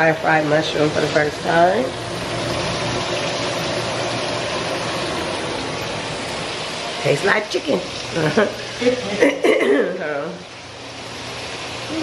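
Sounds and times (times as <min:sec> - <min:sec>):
hot oil sizzling in a pan: 0:00.0 - 0:12.0.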